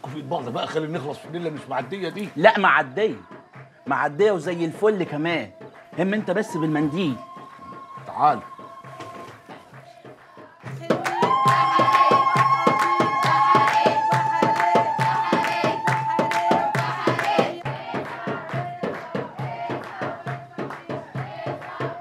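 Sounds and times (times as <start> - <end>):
rhythmic hand clapping: 0.0 - 22.0
women ululating: 10.9 - 17.2.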